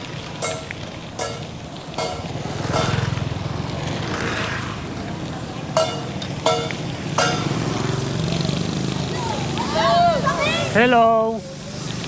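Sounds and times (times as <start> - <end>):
wind and tyres on dirt road: 0.0 - 12.0
small motorbike engine passing: 2.2 - 12.0.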